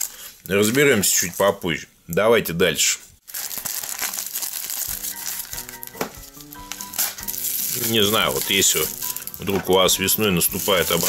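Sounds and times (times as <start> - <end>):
plastic mailer bag crinkling: 0.0 - 1.8, 3.2 - 11.0
quiet background music: 3.4 - 11.0.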